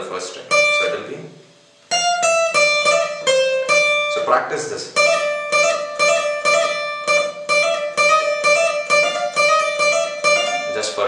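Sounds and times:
acoustic guitar plucked notes: 0.0 - 11.0.

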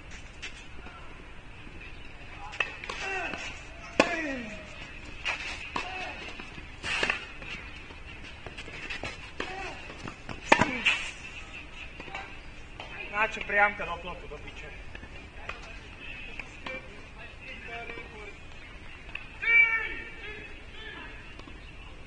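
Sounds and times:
racket hitting tennis ball: 2.5 - 7.7, 8.5 - 11.2
tennis ball bouncing: 2.5 - 11.0.

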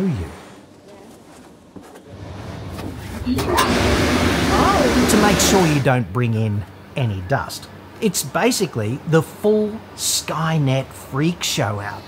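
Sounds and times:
rush of blown air: 3.1 - 5.9.

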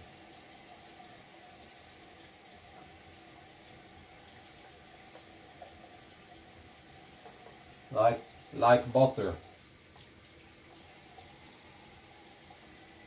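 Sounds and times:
sink tap running: 0.0 - 13.0.

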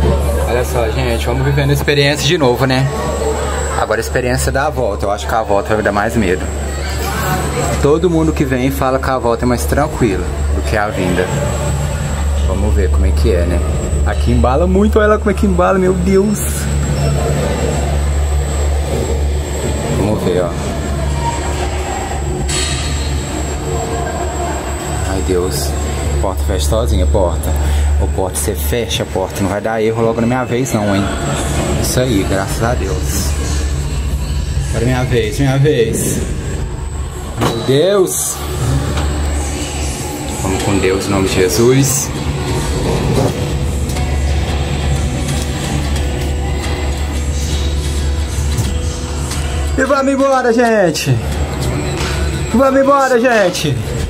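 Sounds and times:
gondola lift machinery humming: 0.0 - 54.0.

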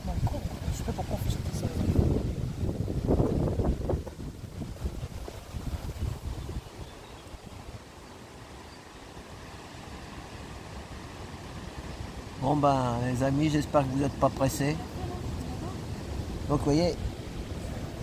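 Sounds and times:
wind buffeting microphone: 0.0 - 7.9, 14.1 - 18.0.

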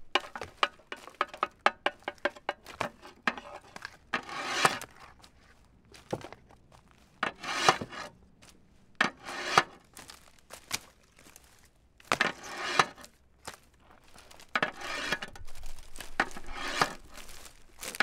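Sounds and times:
rough rubbing and scraping: 0.0 - 5.6, 7.2 - 8.2, 9.0 - 10.3, 12.1 - 13.1, 13.9 - 18.0.

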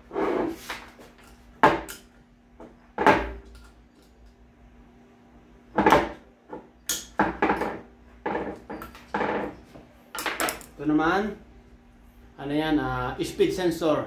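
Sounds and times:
metal parts knocking on workbench: 6.9 - 9.6.

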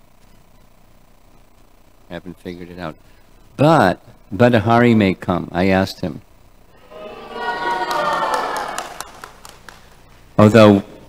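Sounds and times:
audience cheering: 6.8 - 9.9.

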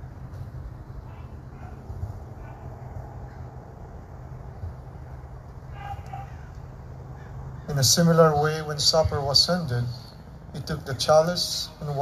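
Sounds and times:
steady low hum: 0.0 - 12.0
man speaking: 7.7 - 12.0.

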